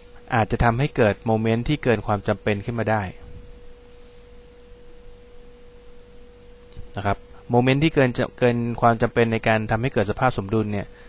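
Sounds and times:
faint steady tone: 0:00.0 - 0:11.0
low background hiss: 0:00.0 - 0:11.0.

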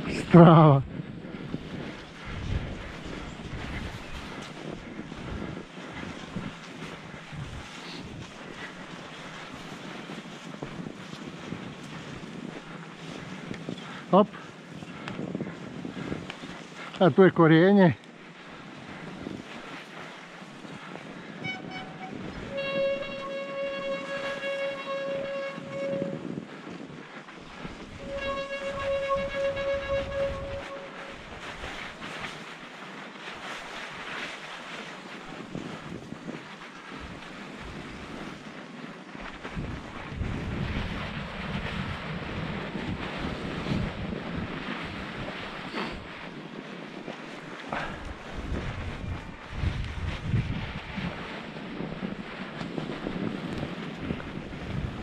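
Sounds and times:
wind on microphone: 0:00.0 - 0:17.0, 0:17.9 - 0:55.0
high-pitched bike squeal: 0:21.4 - 0:26.4, 0:28.0 - 0:31.3.

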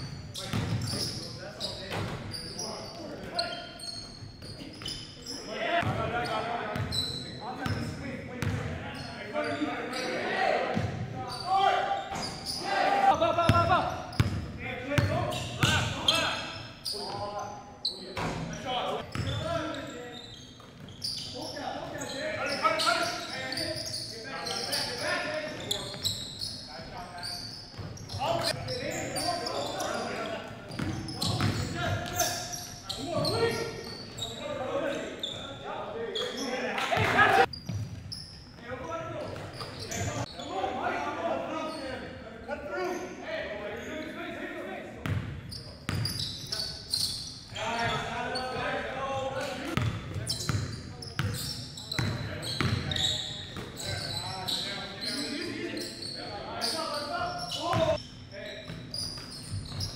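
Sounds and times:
players calling out: 0:00.4 - 0:17.7.

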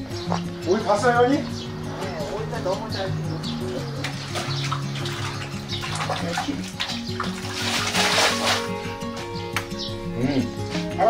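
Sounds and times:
background music: 0:00.0 - 0:11.0
water splashing onto concrete: 0:03.9 - 0:08.9.

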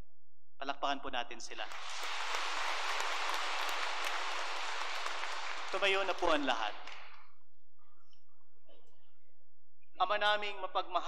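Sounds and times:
crowd applauding: 0:01.7 - 0:07.2.

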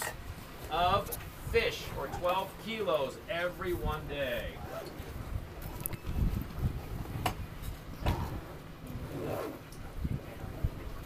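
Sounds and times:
boat motion rumble: 0:00.0 - 0:11.0
wind on microphone: 0:00.0 - 0:11.0.

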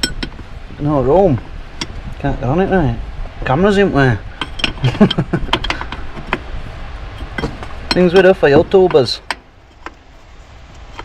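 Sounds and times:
metal spanner clicking: 0:04.4 - 0:06.5.

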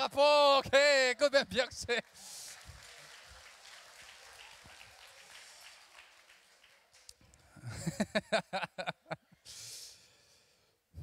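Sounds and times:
audience murmur and rustle: 0:02.0 - 0:07.5.

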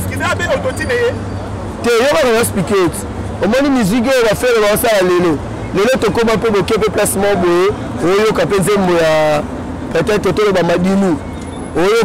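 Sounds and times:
man speaking: 0:00.0 - 0:01.2, 0:01.8 - 0:11.2, 0:11.8 - 0:12.0.

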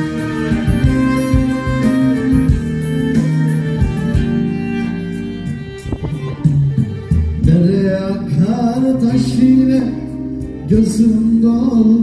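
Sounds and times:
folk band playing: 0:00.0 - 0:12.0
keyboard and strings holding notes: 0:00.0 - 0:12.0
low drum beats: 0:00.0 - 0:12.0.

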